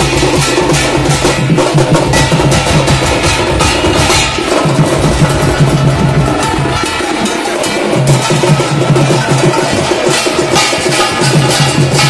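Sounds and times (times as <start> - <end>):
brass hand cymbals: 0.0 - 12.0
drum ensemble: 0.0 - 12.0.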